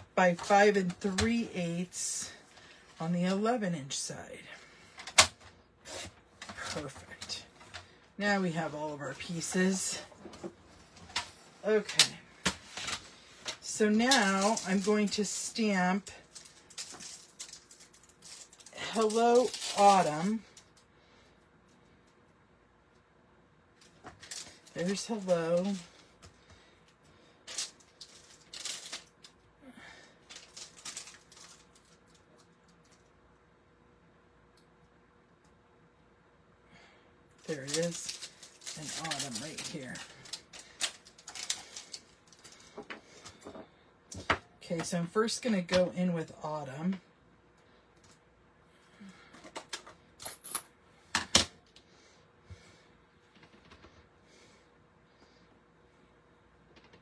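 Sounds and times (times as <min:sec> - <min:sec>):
plastic sheet crinkling: 0:12.7 - 0:15.5, 0:16.1 - 0:20.5, 0:27.4 - 0:29.4, 0:30.2 - 0:32.9, 0:37.4 - 0:42.7.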